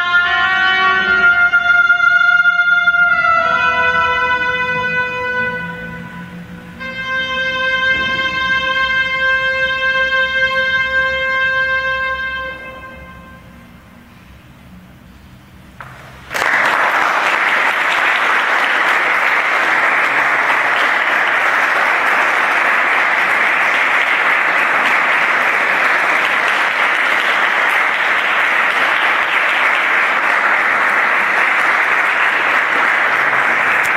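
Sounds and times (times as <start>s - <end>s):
audience applause: 15.8s - 33.9s.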